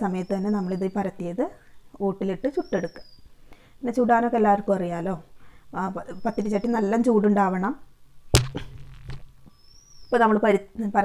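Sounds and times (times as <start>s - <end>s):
dough slapping onto metal pot: 8.4s - 9.3s.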